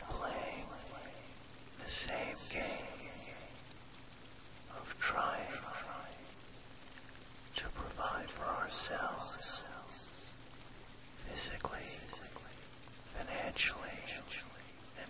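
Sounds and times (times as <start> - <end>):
person whispering: 0.0 - 3.6, 4.6 - 6.4, 7.5 - 10.3, 11.2 - 15.0
rain: 0.0 - 15.0.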